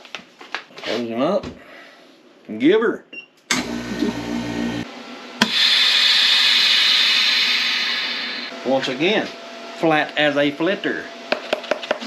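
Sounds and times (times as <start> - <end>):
vacuum pump humming: 3.5 - 10.0
air hissing into chamber: 5.4 - 8.5.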